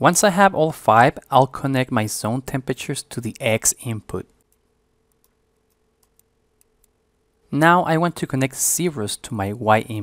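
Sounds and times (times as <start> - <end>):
faint room hum: 0.0 - 10.0
computer mouse clicks: 4.4 - 7.0.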